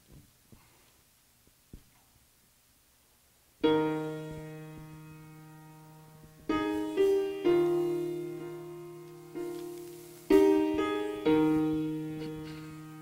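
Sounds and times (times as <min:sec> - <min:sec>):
piano chords: 0:03.6 - 0:13.0.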